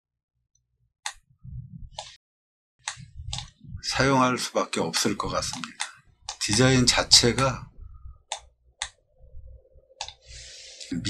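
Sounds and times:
low hum: 1.3s - 2.1s, 2.9s - 4.2s, 5.2s - 11.0s
computer mouse click: 2.9s - 3.5s, 8.3s - 9.0s, 10.0s - 10.2s.

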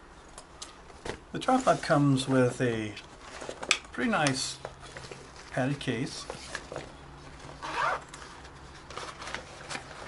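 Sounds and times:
zipper pulled: 7.6s - 8.1s.

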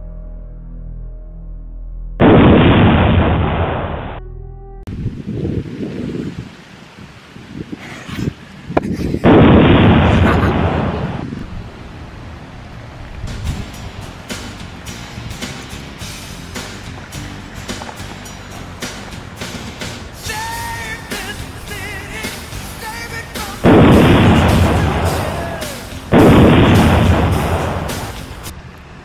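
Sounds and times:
cartoon blast sound effect: 2.2s - 4.2s
explosion boom: 2.2s - 4.2s, 9.2s - 11.3s, 23.6s - 28.2s
background music: 13.6s - 28.5s.

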